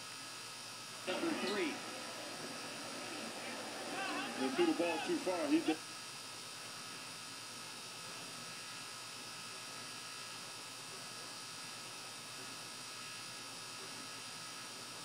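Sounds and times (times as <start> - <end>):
electrical hum and buzz: 1.1 - 5.8
faint hiss: 1.1 - 5.8.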